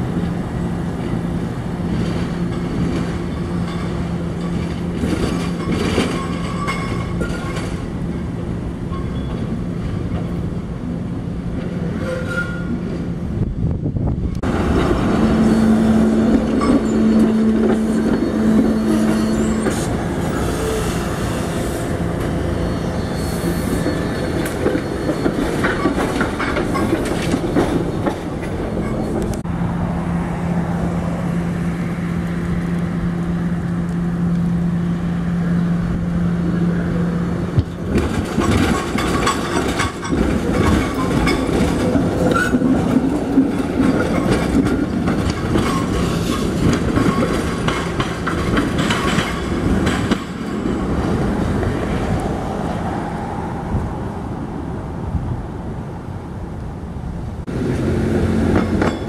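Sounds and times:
trolleys rolling on track: 0:01.0 - 0:10.5, 0:14.3 - 0:29.4, 0:36.8 - 0:52.5, 0:57.4 - 0:59.0
wheels clicking over rail joints: 0:01.8 - 0:08.3, 0:23.7 - 0:29.4, 0:37.5 - 0:52.4, 0:57.4 - 0:59.0.

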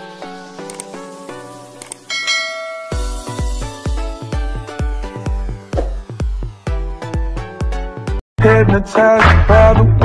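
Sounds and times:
light background music: 0:00.0 - 0:09.2
bright bell chime: 0:02.1 - 0:03.6.

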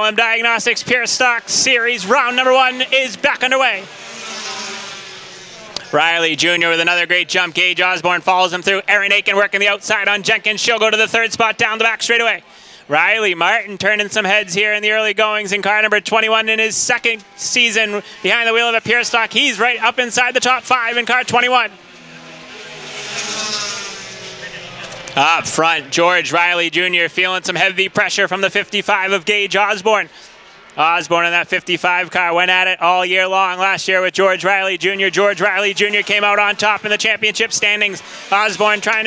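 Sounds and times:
race car engines passing: 0:00.0 - 0:39.0.

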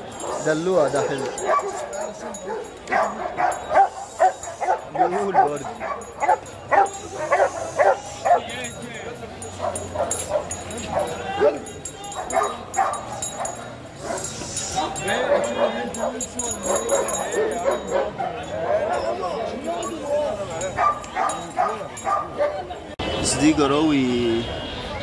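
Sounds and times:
dog barking: 0:00.1 - 0:08.6, 0:09.5 - 0:14.4, 0:15.0 - 0:19.2, 0:20.6 - 0:22.8.

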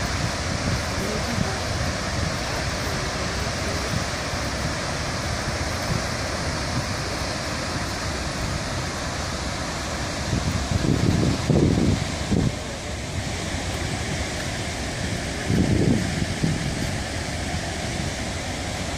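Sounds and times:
heavy spray onto river: 0:00.0 - 0:18.9
water jet rushing: 0:00.0 - 0:18.9
wind on microphone: 0:00.0 - 0:18.9.

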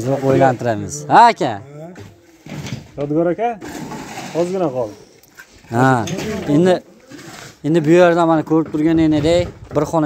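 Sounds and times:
men talking: 0:00.0 - 0:03.7, 0:04.3 - 0:10.0.

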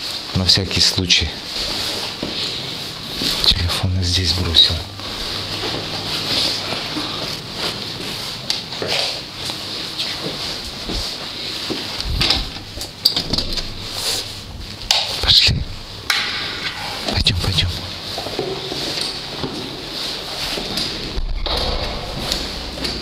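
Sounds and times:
footsteps: 0:01.4 - 0:23.0.

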